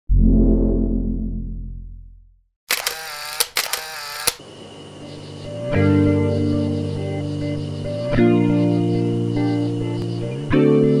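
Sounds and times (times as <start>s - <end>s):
sharp clicks: 2.7s - 4.4s.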